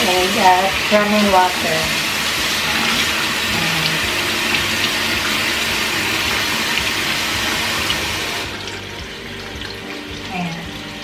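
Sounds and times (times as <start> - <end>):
tap water running into sink: 0.0 - 11.0.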